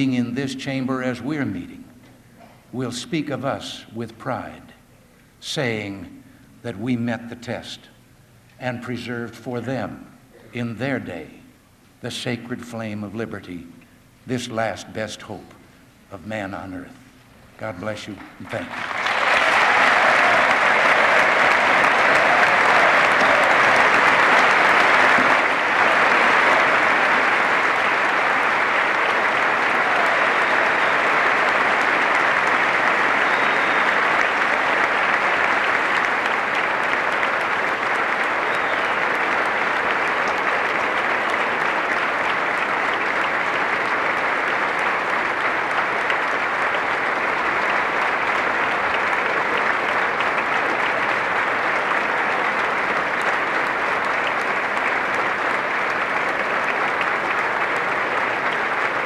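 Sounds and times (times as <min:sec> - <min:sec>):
large audience applauding: 0:18.5 - 0:59.0.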